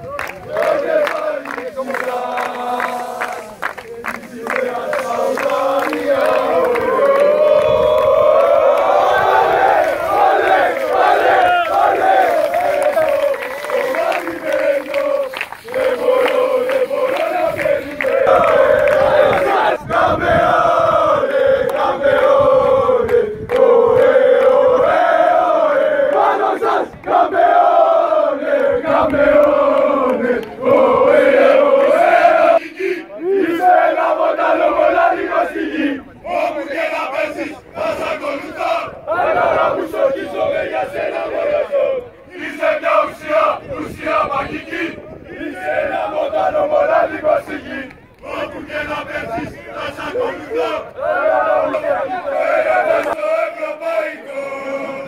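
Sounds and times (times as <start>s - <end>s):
crowd of men chanting a song: 0.5s - 55.0s.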